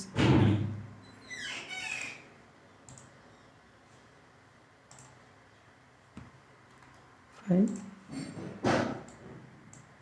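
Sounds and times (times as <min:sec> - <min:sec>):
computer mouse clicks: 0:02.8 - 0:03.2, 0:04.9 - 0:05.2.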